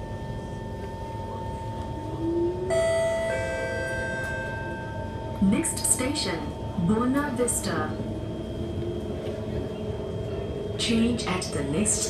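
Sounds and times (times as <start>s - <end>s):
moving train rumble and whine: 0.0s - 12.0s
two-note electronic chime: 2.7s - 5.3s.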